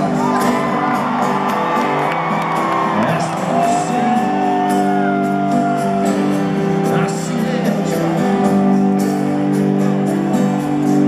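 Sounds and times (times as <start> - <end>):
crowd whooping: 0.0 - 6.6
live country band playing: 0.0 - 11.0.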